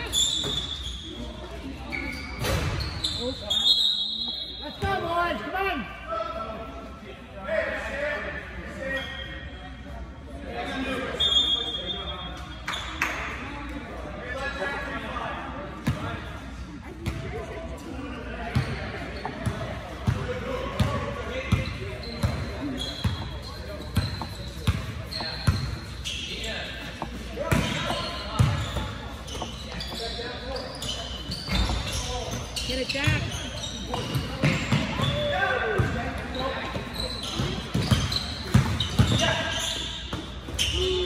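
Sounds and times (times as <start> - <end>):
basketball bouncing on gym floor: 23.9 - 25.8, 27.0 - 30.0, 36.6 - 39.4.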